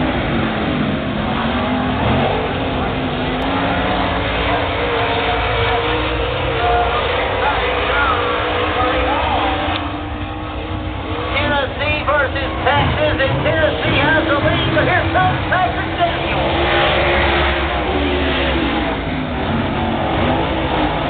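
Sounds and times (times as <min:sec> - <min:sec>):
race car engines: 0:00.0 - 0:21.0
race car passing close: 0:00.0 - 0:21.0
person talking: 0:11.4 - 0:16.6.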